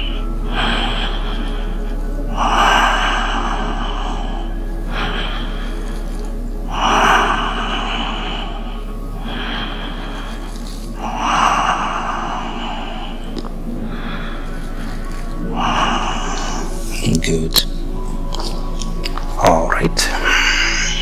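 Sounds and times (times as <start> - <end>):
low electrical hum: 0.0 - 21.0
person breathing deeply: 0.0 - 21.0.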